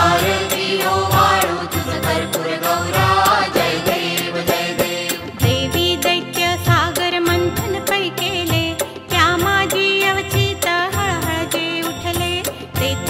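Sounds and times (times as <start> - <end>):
person singing devotional song: 0.0 - 13.0
steady percussion beat: 0.0 - 13.0.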